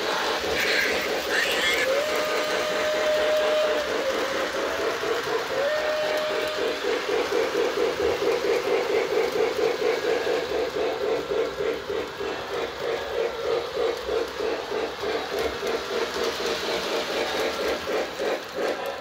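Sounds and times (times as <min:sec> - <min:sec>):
toy train steam chuff: 0:00.0 - 0:19.0
toy train whistle blasts: 0:01.7 - 0:04.4, 0:05.5 - 0:06.8.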